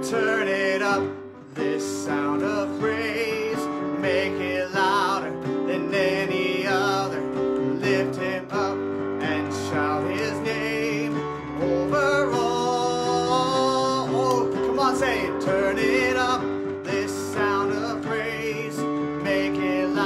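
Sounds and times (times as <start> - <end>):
electronic keyboard chords: 0.0 - 20.0
person singing: 0.0 - 20.0.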